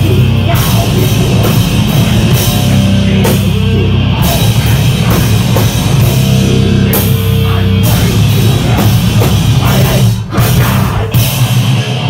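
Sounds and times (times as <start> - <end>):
distorted guitars: 0.0 - 12.0
very fast drumming: 0.0 - 12.0.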